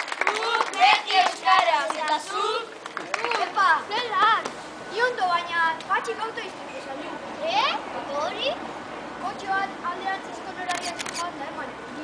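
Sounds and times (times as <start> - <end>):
children talking: 0.2 - 12.0
sharp clicks: 10.6 - 11.3.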